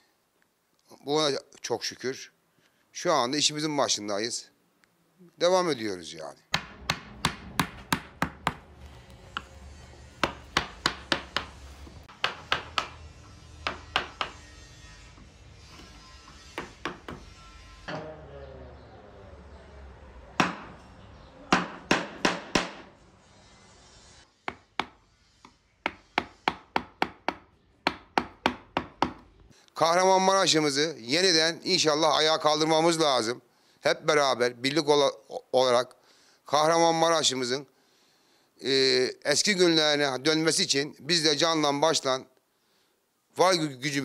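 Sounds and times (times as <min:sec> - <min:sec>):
mallet striking chisel into wood: 0:06.5 - 0:08.6, 0:10.2 - 0:13.0, 0:13.6 - 0:14.4, 0:16.6 - 0:17.3, 0:20.4 - 0:20.7, 0:21.5 - 0:22.9, 0:24.5 - 0:25.0, 0:25.8 - 0:29.2.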